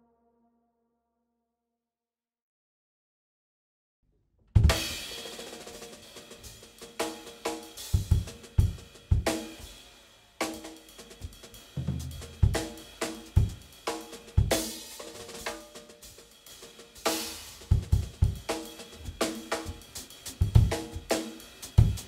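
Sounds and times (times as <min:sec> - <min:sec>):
snare and tom strokes: 0:04.6 - 0:22.0
bass drum thuds: 0:11.8 - 0:12.6, 0:20.4 - 0:20.8.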